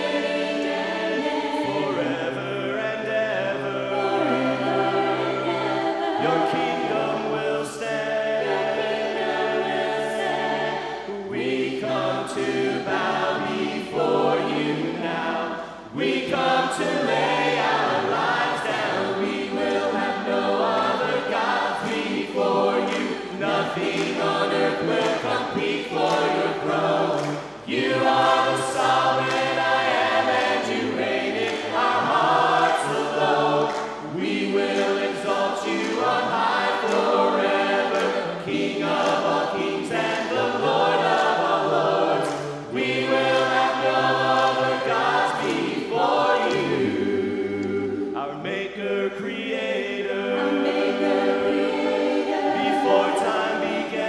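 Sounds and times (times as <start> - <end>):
group singing a hymn a cappella: 0.0 - 54.0.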